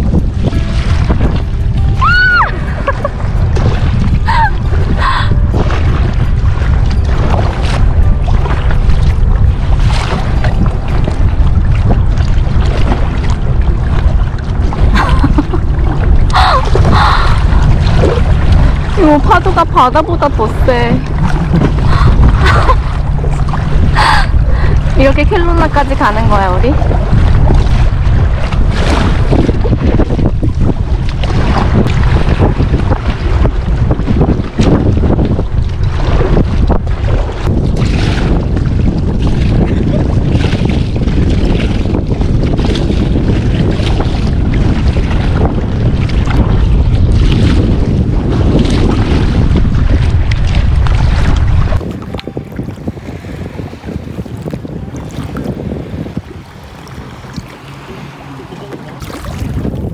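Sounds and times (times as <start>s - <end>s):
paddle splashes: 0.0s - 59.9s
water splashing around kayak: 0.0s - 59.9s
wind buffeting microphone: 0.0s - 59.9s.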